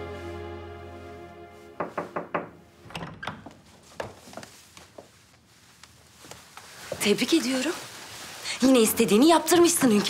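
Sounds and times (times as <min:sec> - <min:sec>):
music: 0:00.0 - 0:02.1
knocks on wooden door: 0:01.8 - 0:02.6.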